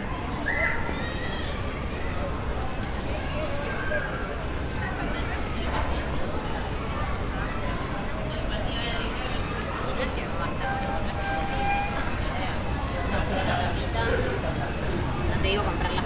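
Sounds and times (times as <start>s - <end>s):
indistinct chatter of people: 0.0s - 16.0s
low rumble of traffic: 0.0s - 16.0s.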